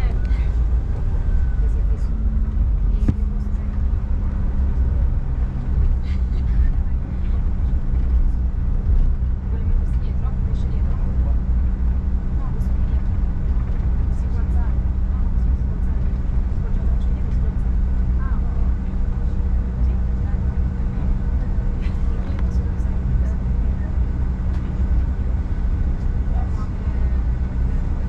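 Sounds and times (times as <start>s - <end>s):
jet engines rumbling: 0.0s - 28.0s.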